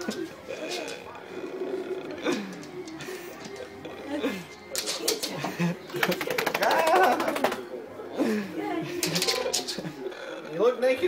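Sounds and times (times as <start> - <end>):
dog grumbling: 0.0 - 4.5, 9.0 - 10.7.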